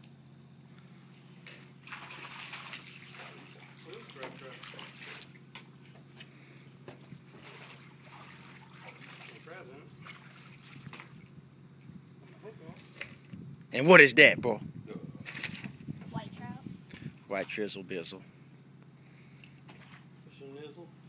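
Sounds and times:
steady low hum: 0:00.0 - 0:21.0
water sloshing and dripping: 0:01.2 - 0:11.6, 0:12.2 - 0:13.4, 0:15.3 - 0:15.9, 0:19.4 - 0:20.3.

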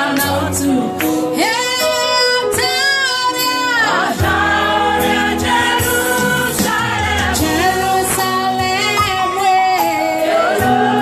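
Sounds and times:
voices singing gospel: 0:00.0 - 0:11.0
bass and beat: 0:04.2 - 0:08.9.

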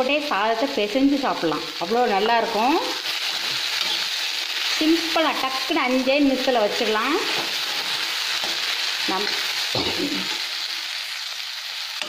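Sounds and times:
okra sizzling in oil: 0:00.0 - 0:12.0
metal spoon stirring: 0:03.1 - 0:04.2.

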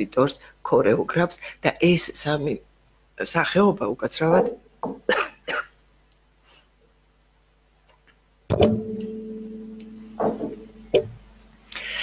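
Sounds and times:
struck ringing note: 0:08.5 - 0:11.6.

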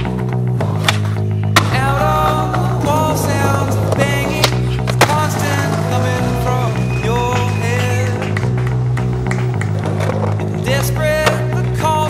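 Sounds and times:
music with steady bass line: 0:00.0 - 0:12.0
skateboard clacking on pavement: 0:07.1 - 0:11.7.

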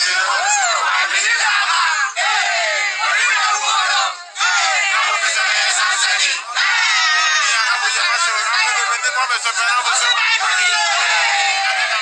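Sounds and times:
crowd shouting: 0:00.0 - 0:12.0.

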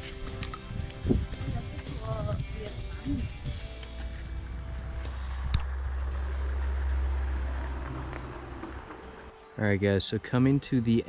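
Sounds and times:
road vehicle passing: 0:01.6 - 0:09.6.

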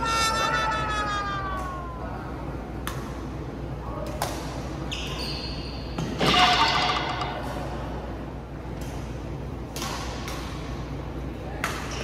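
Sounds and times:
racket hitting shuttlecock: 0:09.7 - 0:10.7.

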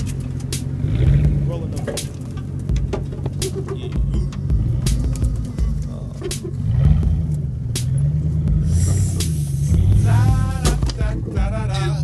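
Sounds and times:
engine rumbling: 0:00.0 - 0:12.0.

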